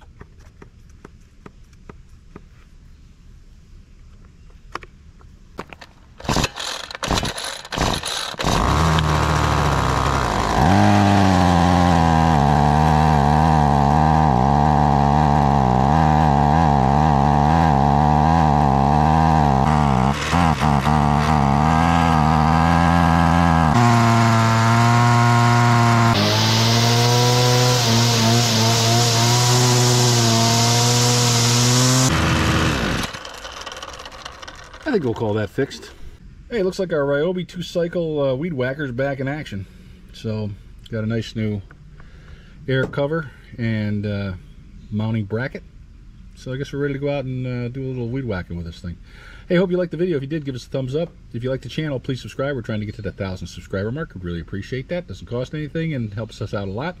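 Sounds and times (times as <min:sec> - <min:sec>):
pull starter cord: 0:05.6 - 0:15.5, 0:17.8 - 0:35.4
string trimmer engine revving: 0:06.2 - 0:35.9.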